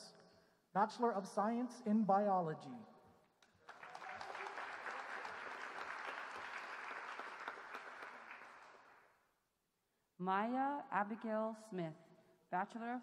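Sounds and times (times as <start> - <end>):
audience applauding: 3.5 - 9.0.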